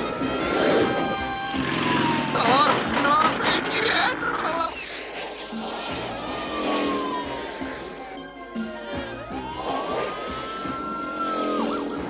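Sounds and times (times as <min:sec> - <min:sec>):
background music: 0:00.0 - 0:12.0
cartoon motorcycle engine: 0:00.4 - 0:04.4.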